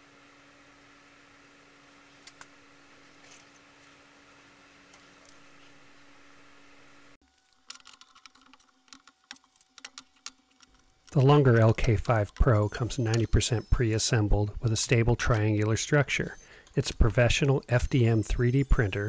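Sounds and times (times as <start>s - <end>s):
quiet steady hum: 4.9s - 19.0s.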